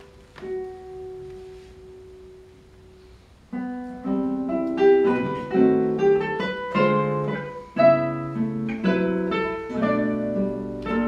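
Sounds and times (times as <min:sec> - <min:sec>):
classical guitar note ringing: 0:00.0 - 0:11.0.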